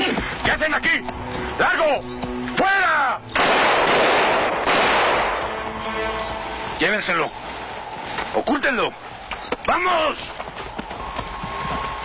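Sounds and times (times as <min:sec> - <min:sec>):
gunfire: 0:03.4 - 0:05.6.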